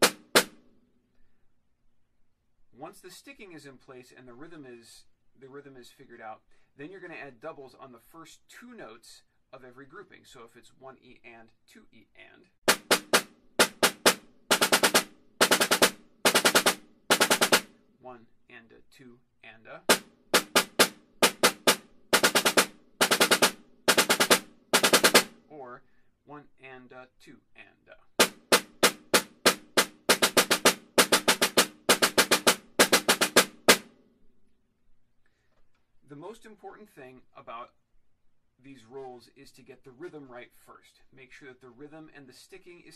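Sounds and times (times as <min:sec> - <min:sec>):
snare drum strokes and rolls: 0:00.0 - 0:00.6, 0:12.7 - 0:17.7, 0:19.8 - 0:25.4, 0:28.2 - 0:34.0.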